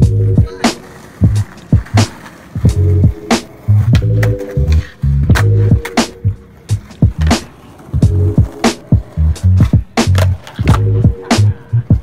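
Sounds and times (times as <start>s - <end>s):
heavy bass line: 0.0s - 0.4s.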